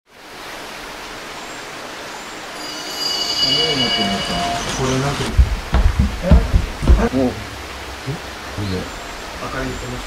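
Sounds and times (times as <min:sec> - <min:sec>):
steady hiss: 0:00.2 - 0:10.0.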